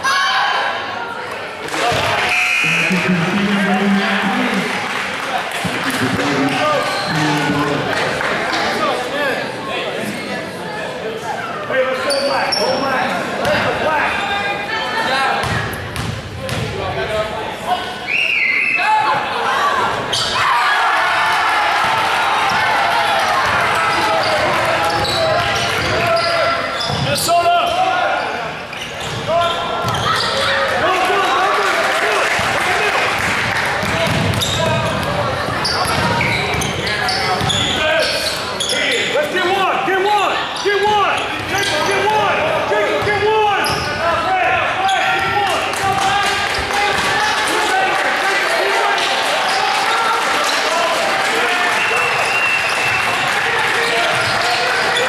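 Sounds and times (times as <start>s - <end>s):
crowd chatter and calls: 0.0s - 55.0s
basketball bouncing on hardwood: 33.8s - 35.1s.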